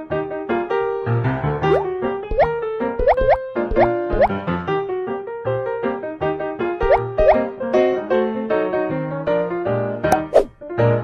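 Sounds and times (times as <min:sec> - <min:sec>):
rising boing sounds: 0:01.7 - 0:04.3
bouncy children's music: 0:01.7 - 0:04.4, 0:06.8 - 0:07.6.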